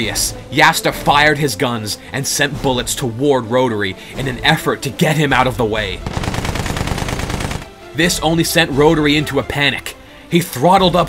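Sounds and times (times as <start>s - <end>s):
machine gun burst: 6.0s - 7.7s.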